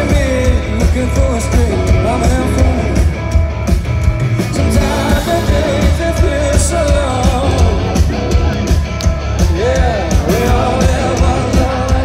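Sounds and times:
man singing lead vocal: 0.0 - 3.3, 4.4 - 8.7, 9.4 - 12.0
live rock band playing: 0.0 - 12.0.

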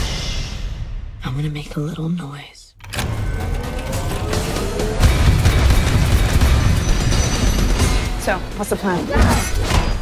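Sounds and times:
trailer music: 0.0 - 2.0, 2.8 - 10.0
minigun rapid fire: 4.4 - 8.2.

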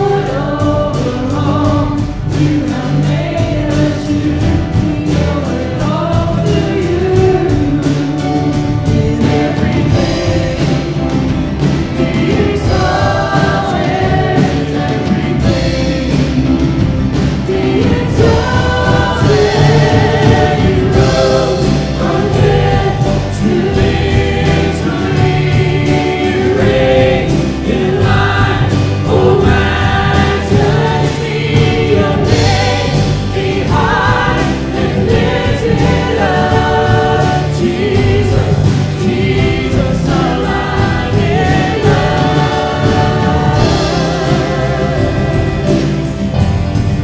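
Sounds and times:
acoustic guitar: 0.0 - 47.0
choir singing: 0.0 - 47.0
keyboard: 0.0 - 47.0.

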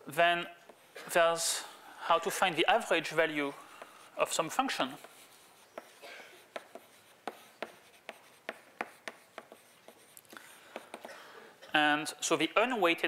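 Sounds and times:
chalk tapping and scraping on blackboard: 0.6 - 0.9, 3.6 - 11.2.

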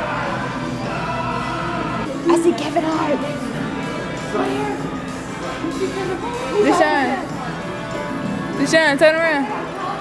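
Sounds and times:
choir-like singing voices: 0.0 - 7.8.

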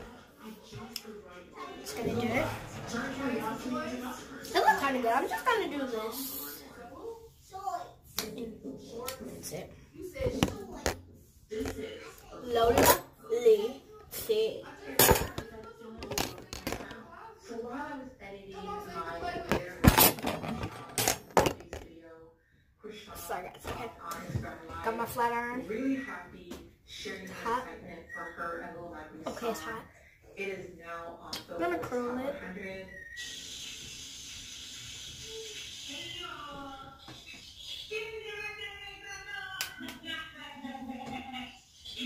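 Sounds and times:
knocks and clatter of objects: 15.0 - 17.0, 19.5 - 21.8.

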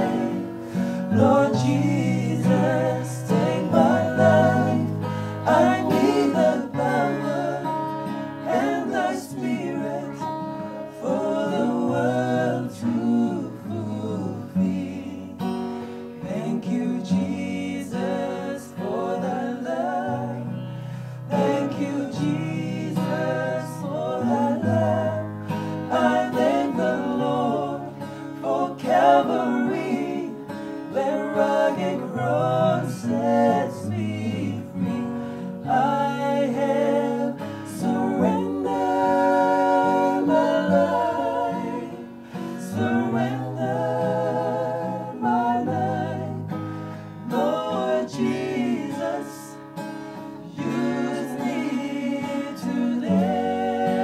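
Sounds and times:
acoustic guitar strumming: 0.0 - 54.0
gospel song sung in harmony: 0.0 - 54.0.

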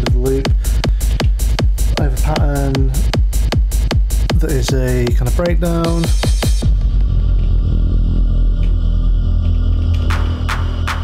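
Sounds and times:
low synth bass drone: 0.0 - 4.4, 6.0 - 11.0.

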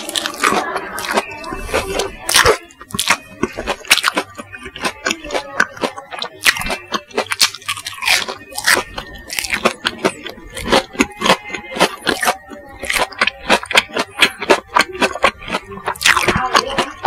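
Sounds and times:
crunchy chewing: 0.0 - 17.0.

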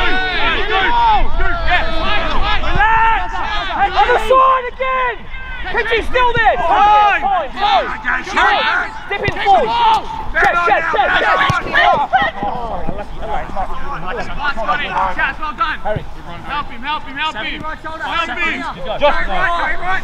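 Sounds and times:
men shouting: 0.0 - 15.4.

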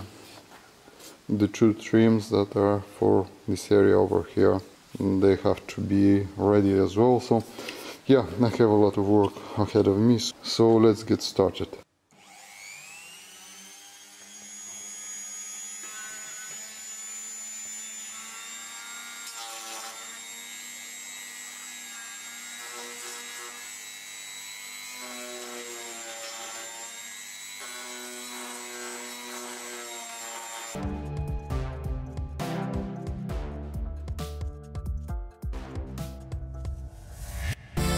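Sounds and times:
rotary tool high whine: 12.1 - 20.8
music: 30.8 - 37.9.

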